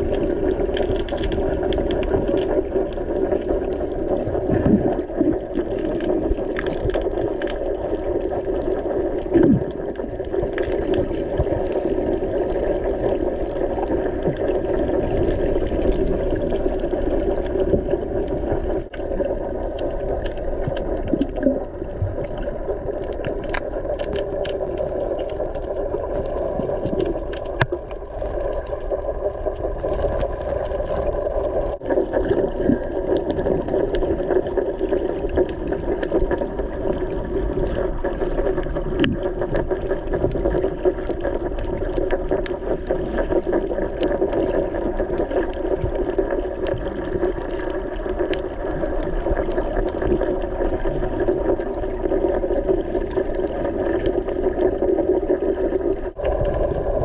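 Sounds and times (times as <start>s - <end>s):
underwater boat engine drone: 0.0s - 57.0s.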